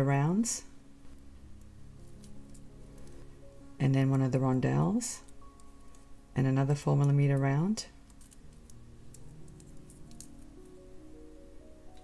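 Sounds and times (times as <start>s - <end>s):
soft background music: 0.0s - 12.0s
glass beads clicking on metal pin: 8.0s - 10.5s.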